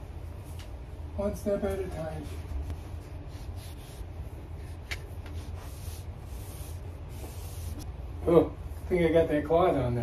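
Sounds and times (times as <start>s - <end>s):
steady low hum: 0.0s - 10.0s
paintbrush strokes on wall: 1.7s - 7.9s.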